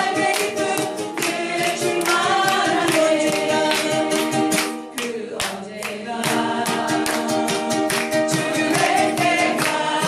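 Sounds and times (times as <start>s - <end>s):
people singing together: 0.0s - 10.0s
ukuleles strumming: 0.0s - 10.0s.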